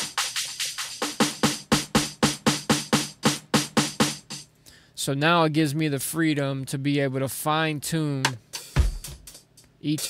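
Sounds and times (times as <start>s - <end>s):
programmed drum loop: 0.0s - 4.5s, 8.0s - 10.0s.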